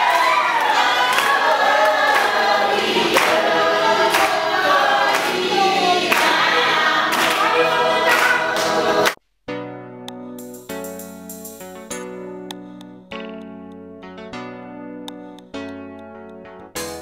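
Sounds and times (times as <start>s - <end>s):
group of voices singing: 0.0s - 9.2s
instrumental music with held notes: 0.7s - 17.0s.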